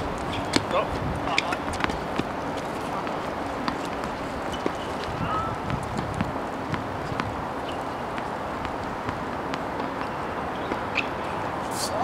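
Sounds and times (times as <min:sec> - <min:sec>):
tennis ball bouncing on court: 0:00.0 - 0:11.2
outdoor background hiss: 0:00.0 - 0:12.0.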